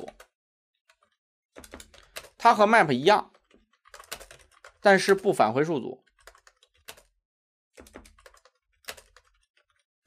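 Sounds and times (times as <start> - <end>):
computer keyboard typing: 0.0 - 2.5, 3.3 - 5.4, 6.0 - 7.2, 7.8 - 9.9.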